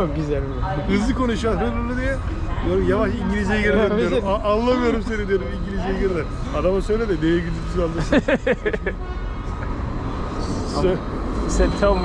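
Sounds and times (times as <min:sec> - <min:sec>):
low rumble of road and tram traffic: 0:00.0 - 0:12.0
man laughing: 0:03.6 - 0:05.6, 0:07.9 - 0:09.1.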